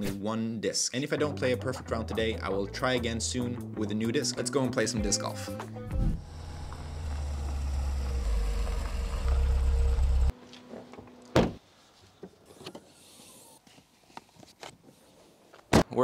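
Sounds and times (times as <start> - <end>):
car driving and parking: 5.8 - 11.2.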